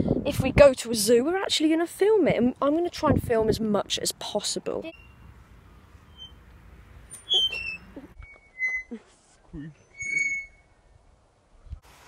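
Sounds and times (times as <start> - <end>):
swing chain squeaking: 4.9 - 5.3, 6.0 - 9.0, 9.7 - 10.7
person laughing: 8.9 - 9.7.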